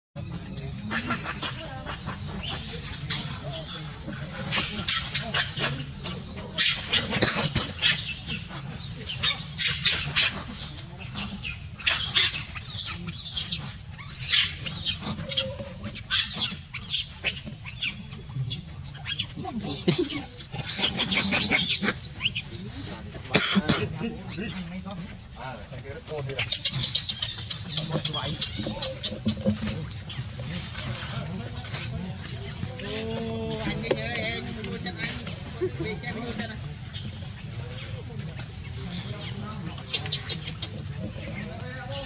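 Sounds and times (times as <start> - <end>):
monkeys screaming and squealing: 0.2 - 42.0.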